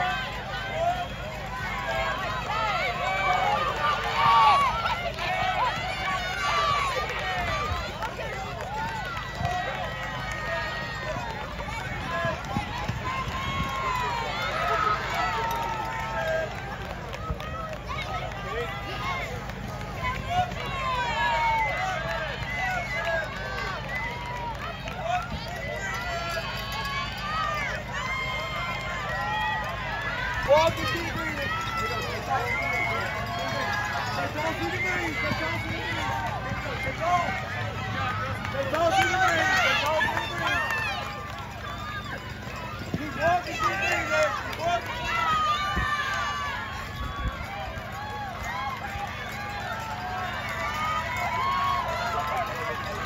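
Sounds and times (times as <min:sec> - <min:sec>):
crowd shouting and cheering: 0:00.0 - 0:53.0.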